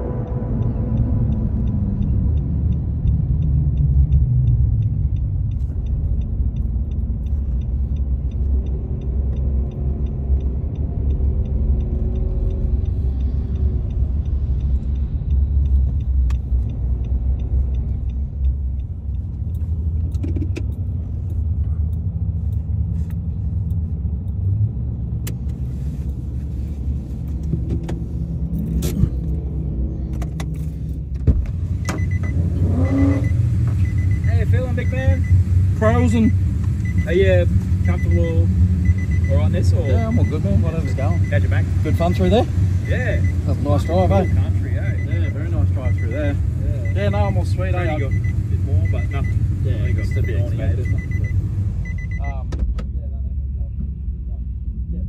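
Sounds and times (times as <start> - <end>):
engine and tyre rumble on wet road: 0.0 - 55.0
faint regular ticking: 0.1 - 26.2, 30.4 - 52.4.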